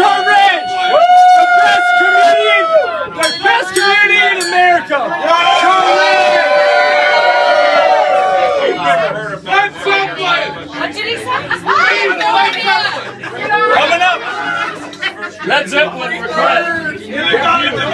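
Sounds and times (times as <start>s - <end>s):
crowd chatter and shouts: 0.0s - 17.9s.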